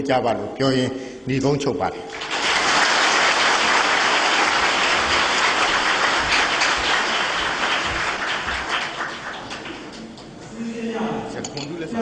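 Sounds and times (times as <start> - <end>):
audience applauding: 2.1 - 10.4.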